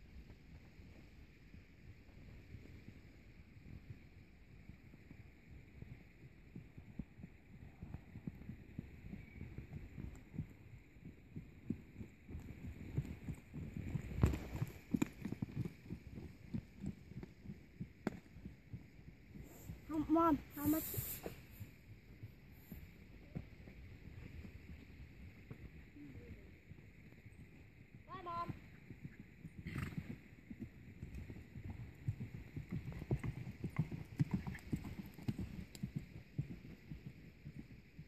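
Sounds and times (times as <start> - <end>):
horse hoofbeats on soft dirt: 0.0 - 38.0
breathy rush of air: 20.5 - 21.6.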